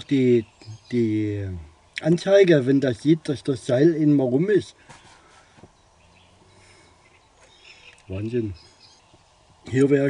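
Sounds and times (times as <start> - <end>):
faint bird chirps: 0.0 - 2.2, 4.9 - 10.0
low background hush: 0.0 - 10.0.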